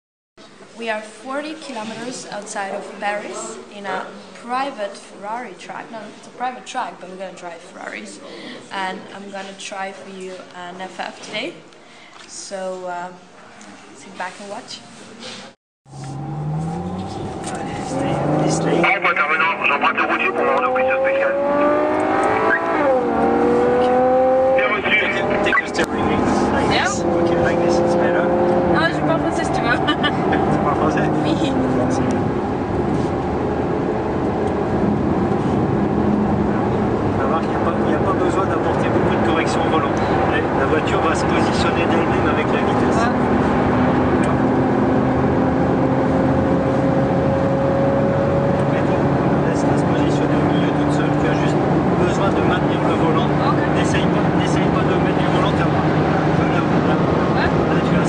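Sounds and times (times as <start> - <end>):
car engine revving: 15.9 - 58.0.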